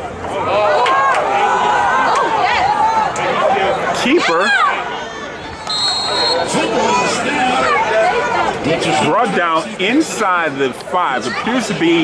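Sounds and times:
crowd voices and chatter: 0:00.0 - 0:12.0
referee's whistle blast: 0:05.6 - 0:07.0.

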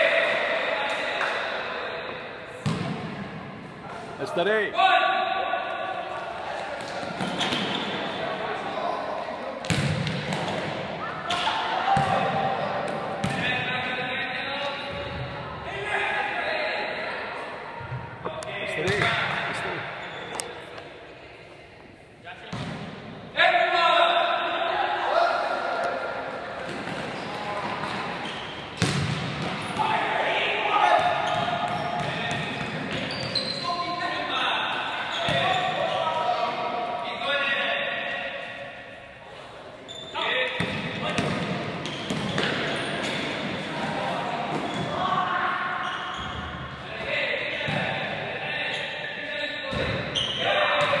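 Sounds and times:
ball bouncing on hall floor: 0:02.6 - 0:03.1, 0:09.6 - 0:10.7, 0:26.6 - 0:29.8
players shouting: 0:29.6 - 0:38.2.

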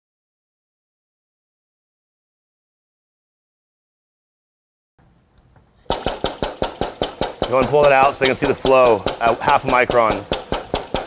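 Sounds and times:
diaphragm pump air exhaust pulsing: 0:05.8 - 0:11.0.

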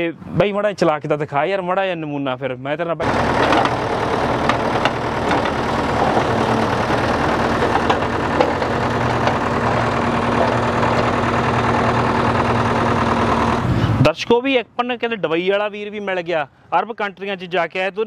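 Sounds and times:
backhoe arm digging: 0:03.0 - 0:13.8
diesel engine running: 0:03.0 - 0:14.1.

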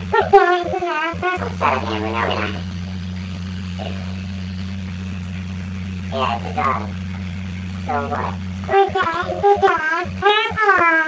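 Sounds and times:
even hiss: 0:00.0 - 0:11.0
steady low hum: 0:00.0 - 0:11.0.

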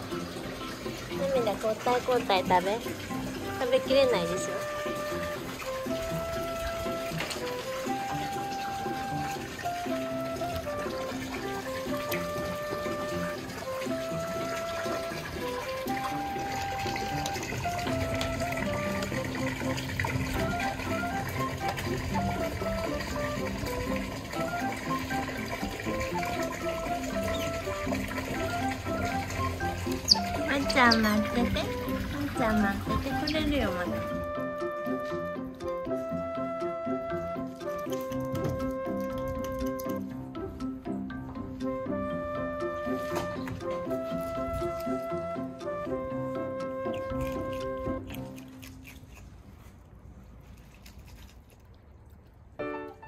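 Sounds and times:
background music: 0:00.0 - 0:49.2, 0:52.6 - 0:53.0.

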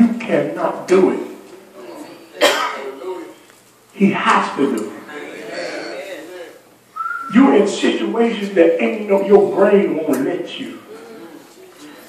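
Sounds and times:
man clearing his throat: 0:02.4 - 0:02.9.

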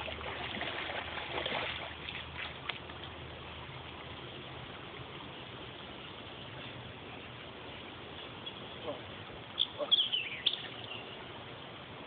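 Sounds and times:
feet splashing through water: 0:00.0 - 0:05.5
creek water running: 0:00.0 - 0:12.0.

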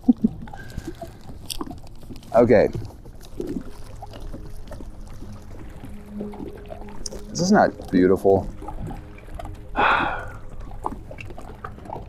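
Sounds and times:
waves lapping against boat hull: 0:00.4 - 0:12.0.

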